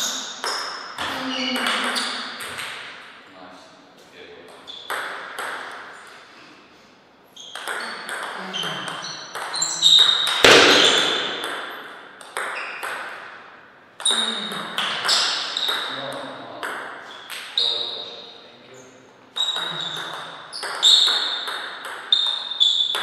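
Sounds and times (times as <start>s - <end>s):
table tennis ball hits echoing: 0.1s - 3.2s, 4.5s - 6.0s, 7.4s - 17.6s, 19.4s - 23.0s.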